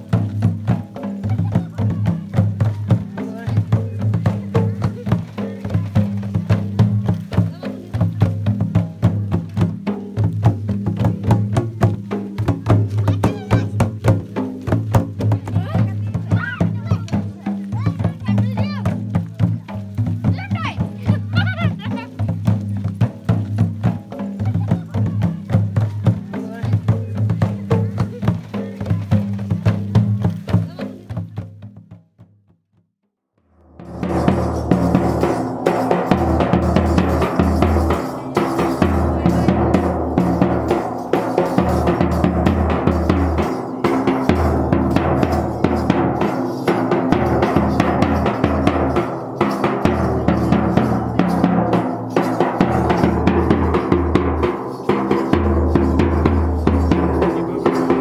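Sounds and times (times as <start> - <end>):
sharp clicking percussion: 0.0 - 32.0, 33.5 - 58.0
bass drum fast rhythm: 0.0 - 32.7, 33.6 - 58.0
folk drumming: 0.0 - 32.7, 33.5 - 58.0.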